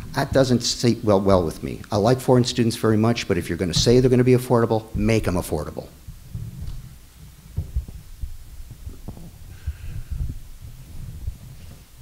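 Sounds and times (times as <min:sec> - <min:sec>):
low thumps and rumble: 0:03.7 - 0:04.3, 0:06.0 - 0:12.0
sharp knocks: 0:03.7 - 0:04.3.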